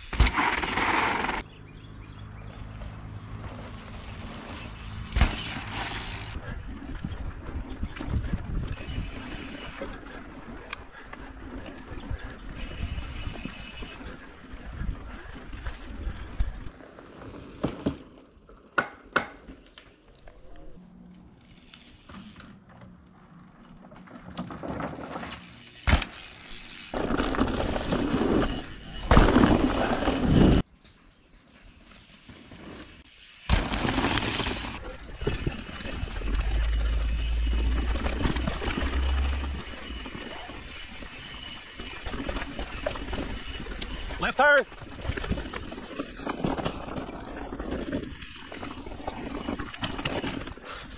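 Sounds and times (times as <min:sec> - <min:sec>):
bike rattling over bumps: 0:00.0 - 0:01.5, 0:02.8 - 0:19.7, 0:21.4 - 0:30.6, 0:32.2 - 0:50.9
wind rumble on microphone: 0:06.4 - 0:09.6.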